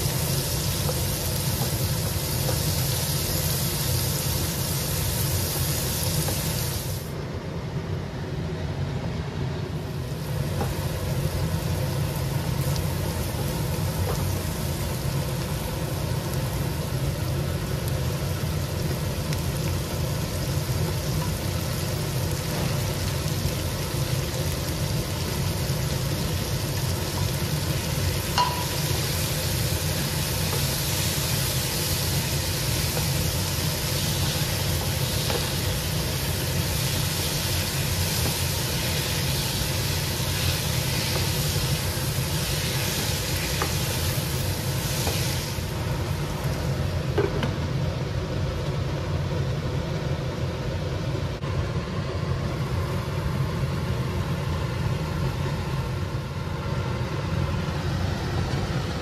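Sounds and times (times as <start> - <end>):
food sizzling in oil: 0.0 - 7.1, 9.8 - 47.1.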